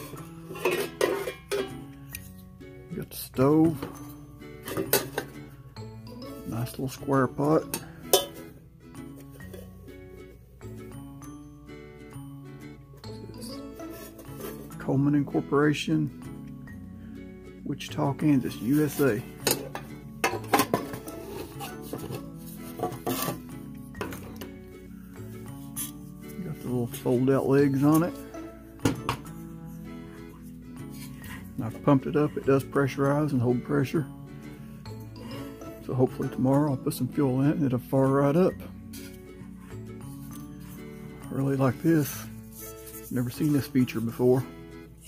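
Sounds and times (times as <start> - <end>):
metal camp pot clinking: 0.0 - 2.4, 3.4 - 5.6, 6.5 - 9.9, 13.0 - 15.3, 18.0 - 24.6, 25.6 - 29.4
background music: 0.0 - 45.0.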